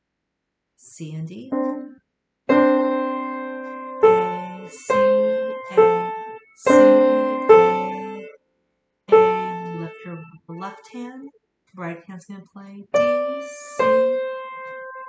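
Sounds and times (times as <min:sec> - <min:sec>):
upright piano played slowly: 0:01.5 - 0:01.9, 0:02.5 - 0:08.3, 0:09.1 - 0:10.4, 0:13.0 - 0:15.0.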